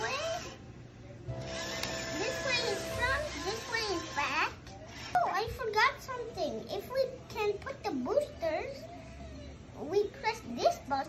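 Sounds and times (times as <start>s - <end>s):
steady electronic hum: 0.0s - 4.9s.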